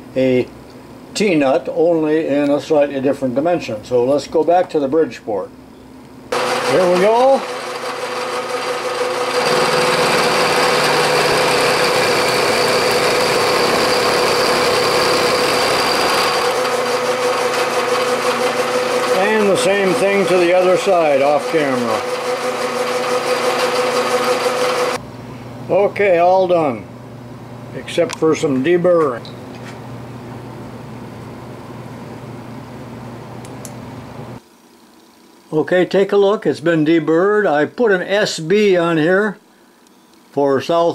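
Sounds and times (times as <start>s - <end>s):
end mill cutting metal: 6.3s - 25.0s
milling machine spindle hum: 6.3s - 25.0s.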